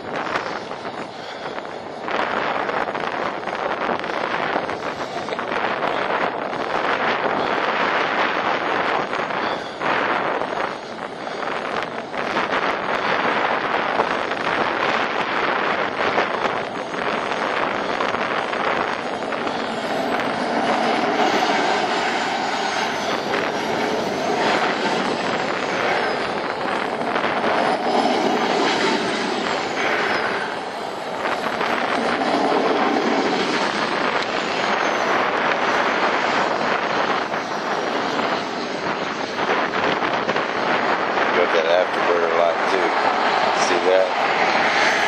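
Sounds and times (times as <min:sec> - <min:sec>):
model jet turbine running: 0:00.0 - 0:45.0.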